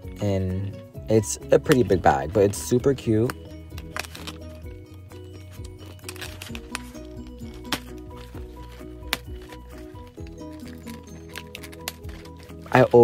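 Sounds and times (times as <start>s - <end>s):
background music: 0.0s - 13.0s
scissors snipping plastic: 1.6s - 2.1s, 3.2s - 13.0s.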